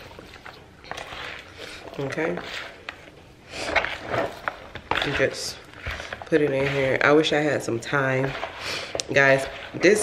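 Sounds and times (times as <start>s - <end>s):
wet rustling of meat in bowl: 0.0s - 10.0s.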